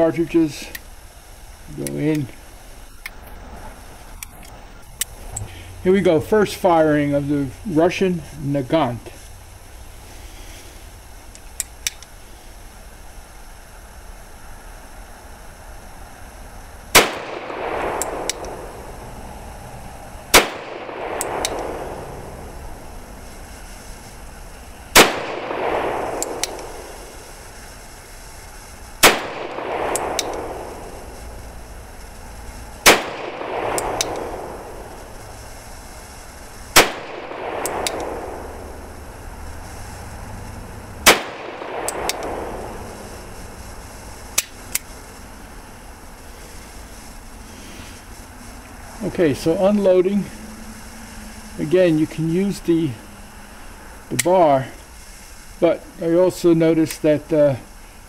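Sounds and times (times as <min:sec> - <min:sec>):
small revolver clicks: 0:11.3 - 0:12.1, 0:17.8 - 0:18.7, 0:21.1 - 0:21.8, 0:26.1 - 0:26.8, 0:29.8 - 0:30.6, 0:33.6 - 0:34.6, 0:36.8 - 0:38.2, 0:41.8 - 0:42.5, 0:44.4 - 0:44.9.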